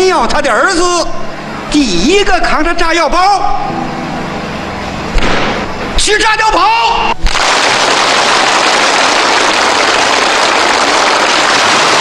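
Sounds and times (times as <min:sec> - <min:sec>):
crowd applauding: 0:07.2 - 0:12.0.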